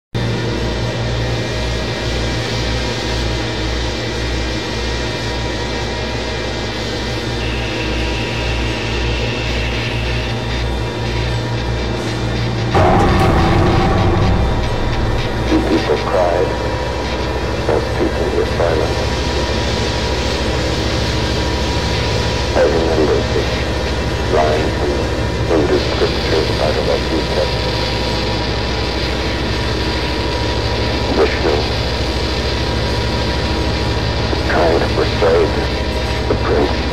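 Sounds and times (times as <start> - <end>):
low throbbing drone: 0.2 - 36.9
dense layered noise texture: 12.8 - 16.6
distorted voice fragments: 12.8 - 16.8, 17.4 - 19.7, 22.5 - 27.6, 31.0 - 31.9, 34.3 - 36.9.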